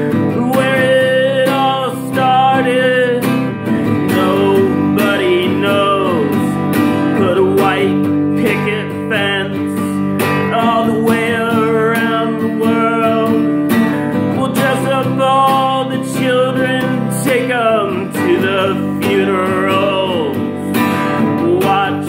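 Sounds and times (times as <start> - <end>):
acoustic guitar strumming: 0.0 - 22.0
man singing: 0.0 - 22.0.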